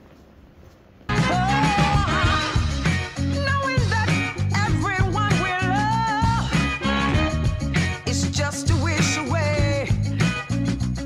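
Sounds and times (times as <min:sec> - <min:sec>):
person singing: 0:01.1 - 0:10.2.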